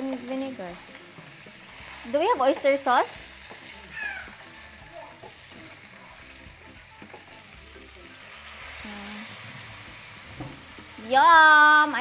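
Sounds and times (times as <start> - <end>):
meat sizzling in a pan: 0.0 - 12.0.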